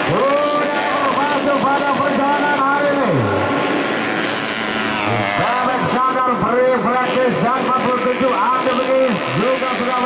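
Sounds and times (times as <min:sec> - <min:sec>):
dirt bike engines revving: 0:00.0 - 0:10.0.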